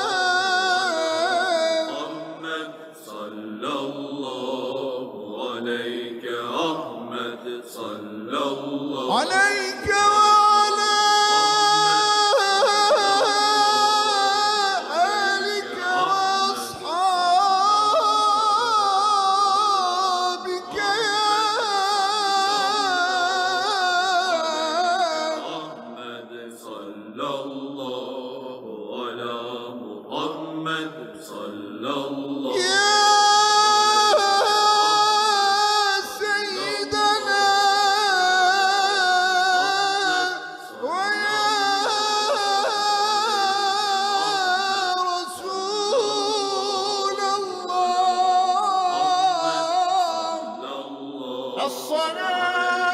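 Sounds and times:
person singing devotional chant: 0:00.0 - 0:52.9.

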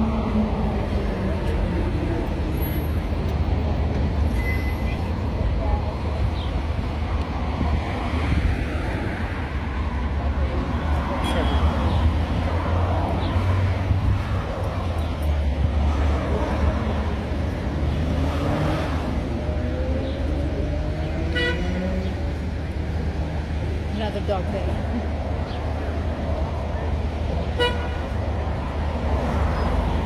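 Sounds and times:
low traffic rumble: 0:00.0 - 0:30.0
vehicles passing: 0:00.0 - 0:30.0.

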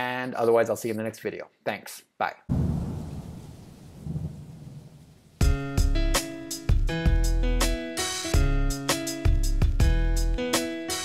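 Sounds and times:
low rumbling noise: 0:02.5 - 0:05.4.

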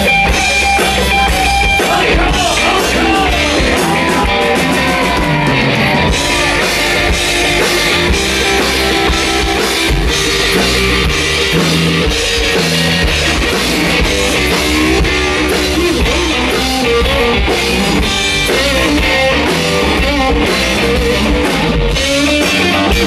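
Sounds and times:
drum kit: 0:00.0 - 0:23.0
electric guitar: 0:00.0 - 0:23.0.

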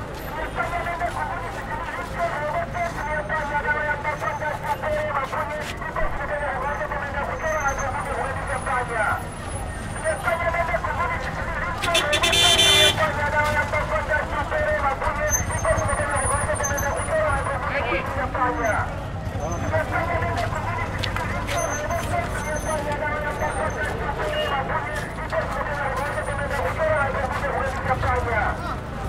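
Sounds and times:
many voices talking: 0:00.0 - 0:29.0
traffic rumble: 0:00.0 - 0:29.0
vehicle horn: 0:11.8 - 0:13.2.

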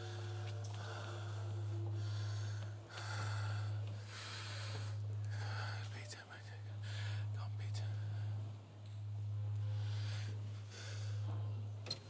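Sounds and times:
man whispering breathily: 0:00.0 - 0:08.6
steady low hum: 0:00.0 - 0:12.0.

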